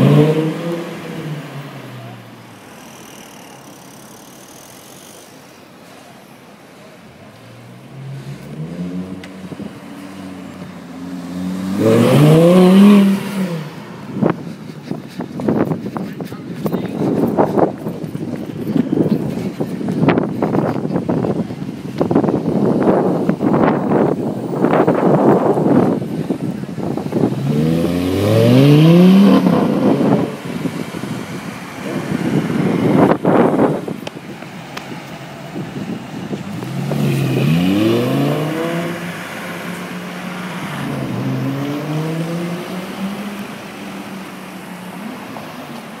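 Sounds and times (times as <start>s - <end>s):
sports car engine accelerating: 0.0s - 2.2s, 7.6s - 14.5s, 26.8s - 33.8s, 36.2s - 46.0s
traffic noise: 0.0s - 46.0s
wind buffeting microphone: 12.4s - 39.4s.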